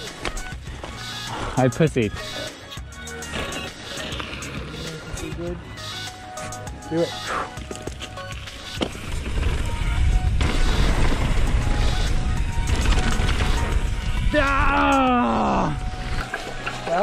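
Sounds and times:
tyres rumbling over dirt: 7.6 - 17.0
rider shouting: 14.3 - 15.8.

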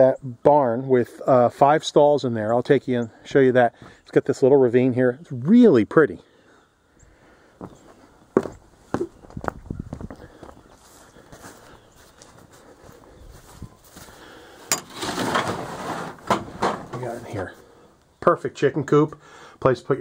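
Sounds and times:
footsteps on grass: 7.6 - 14.7
metal shed door scraping and rattling: 14.7 - 17.5.

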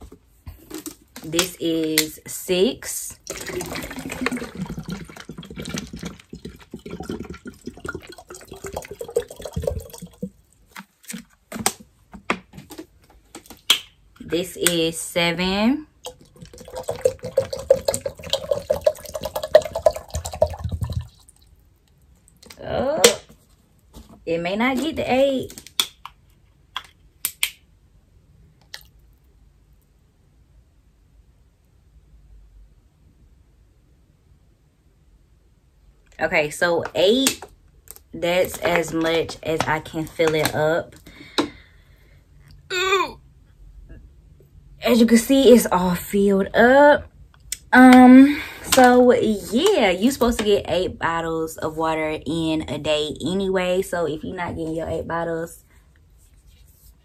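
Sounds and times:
water pouring into a bottle: 3.1 - 11.2, 16.0 - 21.7.

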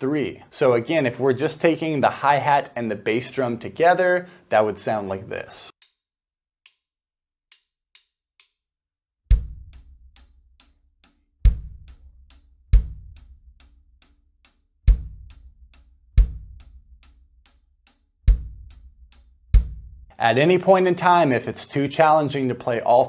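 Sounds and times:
light stick ticks: 5.8 - 6.0, 7.5 - 8.6
bass drum kicks: 9.3 - 10.2, 11.4 - 13.5, 14.9 - 15.6, 16.2 - 17.0, 18.3 - 20.1
hi-hat playing steady: 9.3 - 19.8.

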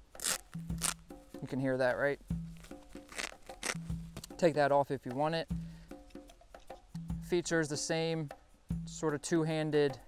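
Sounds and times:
hook-and-loop fastener ripping: 0.2 - 1.0, 3.0 - 3.8.

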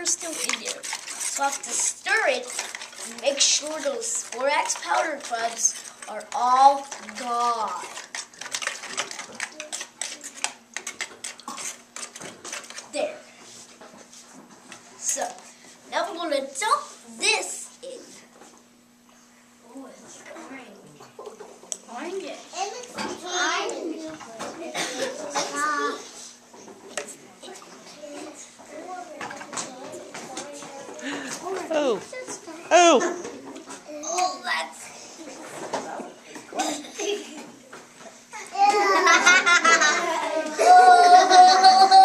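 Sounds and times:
spoon stirring in plastic bucket: 0.0 - 13.0
children and adults talking: 19.6 - 37.6.

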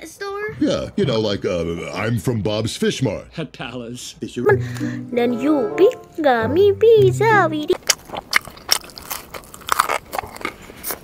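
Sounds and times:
crunchy pizza crust chewing: 7.8 - 11.0.

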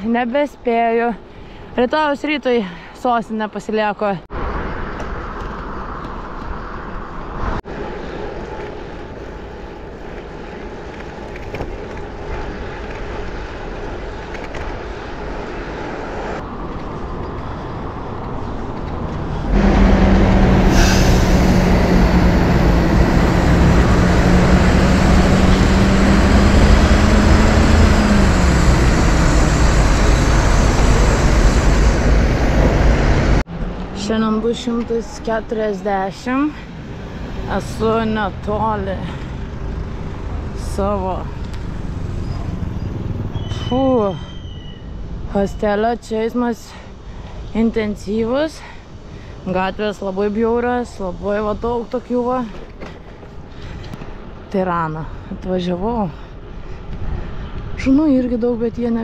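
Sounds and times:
city traffic noise: 0.0 - 59.0
cycling road noise: 0.0 - 59.0
engine drone: 17.4 - 34.0.

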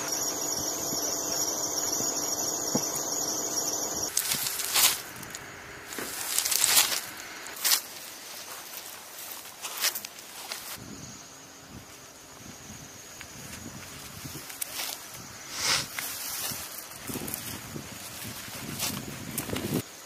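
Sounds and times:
high whine: 0.0 - 7.6
low hum: 0.0 - 7.6.

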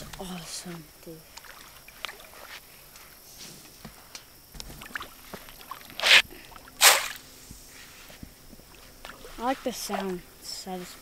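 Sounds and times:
small plops and ticks: 0.1 - 3.1, 8.5 - 10.2.

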